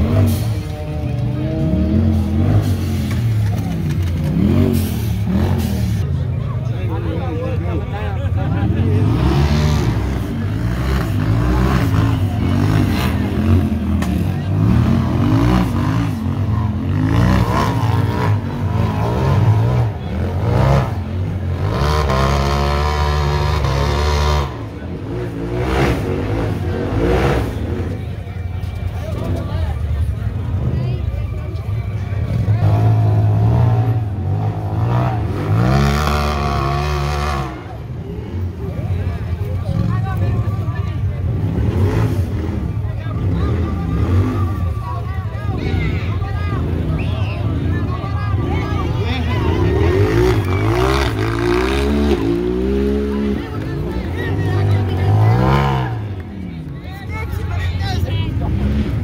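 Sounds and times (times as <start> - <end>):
off-road engines revving hard: 0.0 - 59.0.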